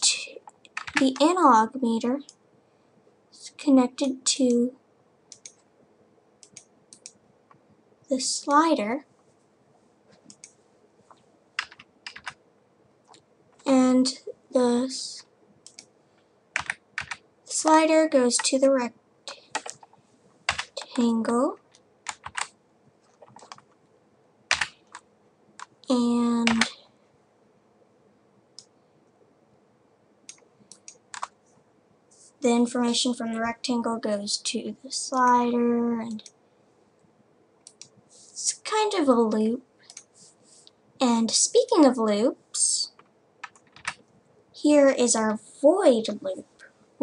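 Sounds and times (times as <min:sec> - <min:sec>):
computer keyboard keystrokes: 0:00.6 - 0:01.3, 0:11.6 - 0:12.4, 0:16.6 - 0:17.2, 0:19.3 - 0:19.9, 0:21.7 - 0:22.5, 0:23.1 - 0:23.8, 0:24.5 - 0:25.0, 0:30.3 - 0:31.4, 0:39.9 - 0:40.1, 0:43.0 - 0:44.1
faint sharp clicks: 0:05.3 - 0:05.6, 0:06.4 - 0:07.6, 0:10.2 - 0:10.6, 0:37.0 - 0:38.0.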